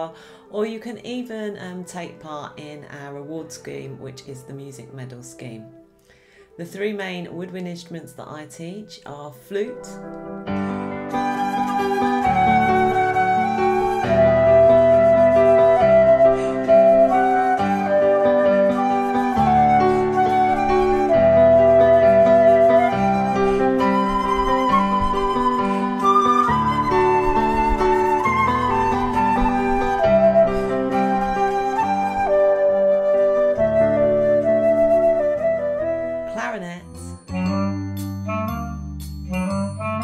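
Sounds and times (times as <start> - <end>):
lower accompaniment: 6.6 - 40.0
flute playing held notes: 11.0 - 36.5.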